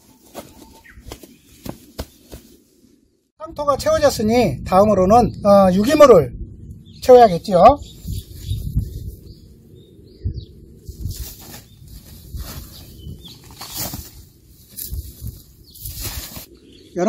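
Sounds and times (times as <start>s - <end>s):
gloved hands rustling soil: 0.0s - 2.9s, 10.9s - 16.6s.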